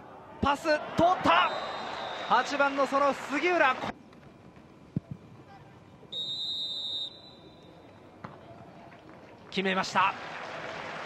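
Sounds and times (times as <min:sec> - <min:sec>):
referee's whistle blast: 0:01.4 - 0:02.5, 0:06.1 - 0:07.7.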